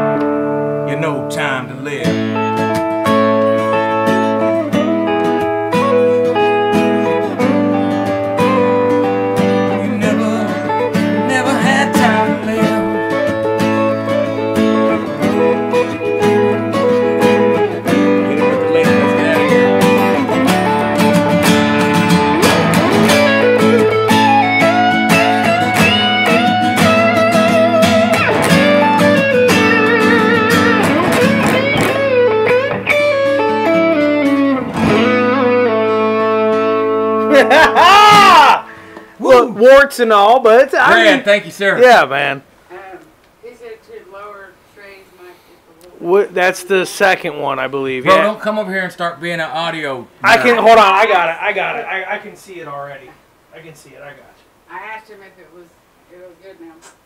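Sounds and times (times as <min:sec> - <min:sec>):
electric guitar lead: 0:00.0 - 0:39.2, 0:48.0 - 0:48.4
acoustic guitar strumming: 0:00.0 - 0:42.3, 0:46.1 - 0:52.6.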